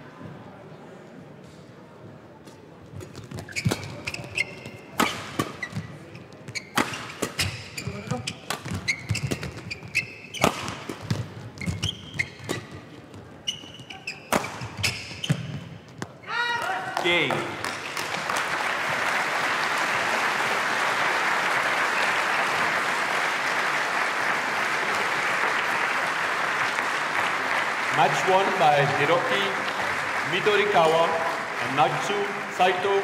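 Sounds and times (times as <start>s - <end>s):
shoes squeaking on court: 2.5s - 16.3s
racket hitting shuttlecock: 3.0s - 12.8s, 13.9s - 16.2s
player shouting: 16.2s - 17.0s.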